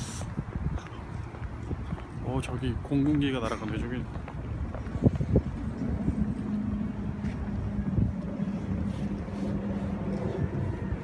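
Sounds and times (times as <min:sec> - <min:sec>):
wind buffeting microphone: 0:00.0 - 0:11.0
plane droning overhead: 0:00.4 - 0:11.0.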